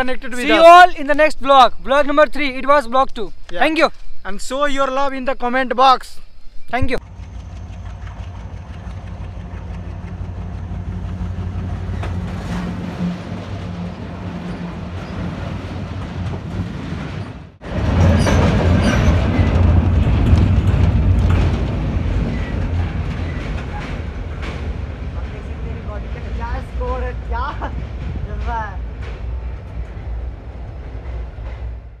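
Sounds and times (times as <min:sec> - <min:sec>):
freight wagons rumbling on track: 0:07.0 - 0:32.0
wheels clattering over rails: 0:07.0 - 0:32.0.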